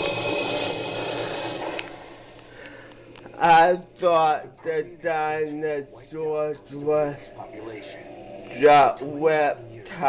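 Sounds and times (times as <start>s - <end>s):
faint high whine: 0.0s - 10.0s
click: 1.7s - 3.3s.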